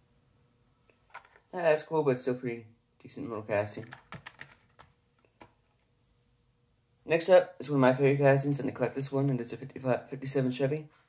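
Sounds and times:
plastic packaging clicks and taps: 1.1 - 1.4, 3.8 - 5.6.

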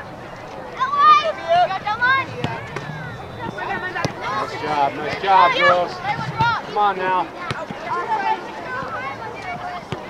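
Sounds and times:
crowd murmur: 0.0 - 10.0
people shouting: 0.8 - 5.9.

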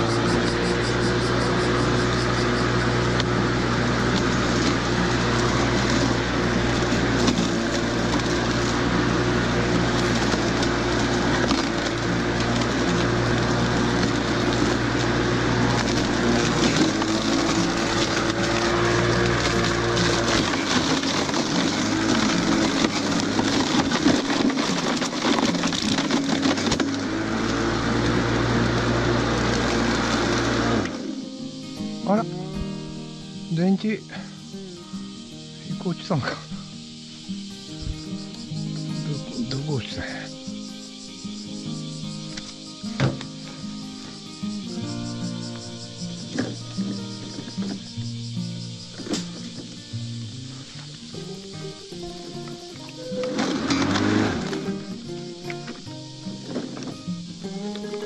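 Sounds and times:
electric lawn mower humming: 0.0 - 58.0
blade cutting dry grass: 0.1 - 31.0, 51.2 - 55.8
debris ticking: 1.9 - 28.3.

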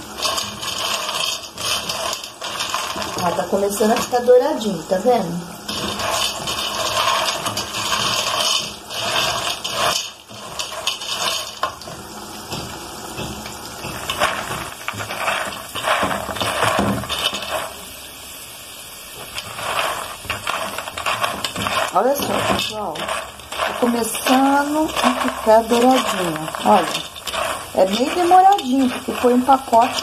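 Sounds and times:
pasta frying in oil: 0.0 - 30.0
pasta rattling and scraping in pot: 0.0 - 30.0.

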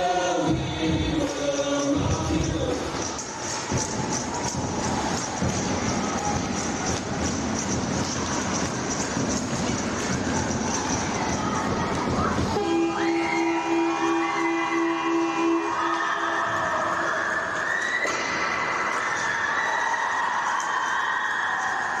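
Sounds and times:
horn blaring: 12.5 - 16.6.

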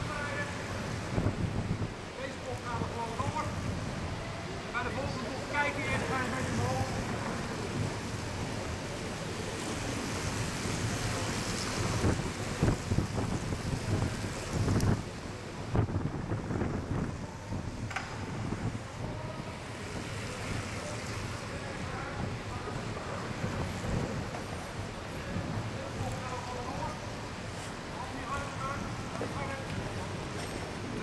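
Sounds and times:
faint voices: 16.6 - 31.0.

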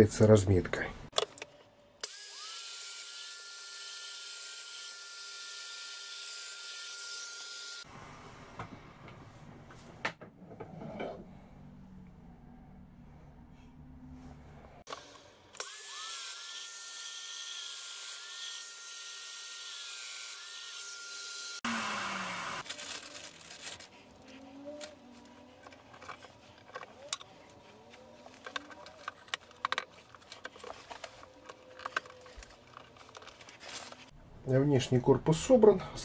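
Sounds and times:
power tool running: 2.0 - 7.9, 14.9 - 23.4
wooden pieces clicking and knocking: 28.2 - 33.5.

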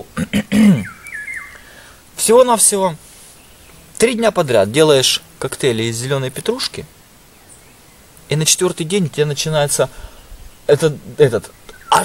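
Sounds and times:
faint bird chirp: 0.5 - 2.0, 3.1 - 4.1, 6.8 - 12.0.

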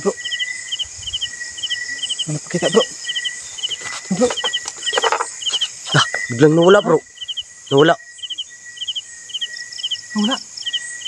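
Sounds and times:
cricket chirping: 0.0 - 11.0
high insect drone: 0.0 - 11.0.

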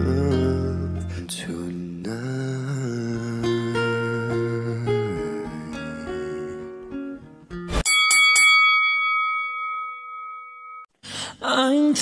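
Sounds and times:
bell-like chime: 7.8 - 10.9.

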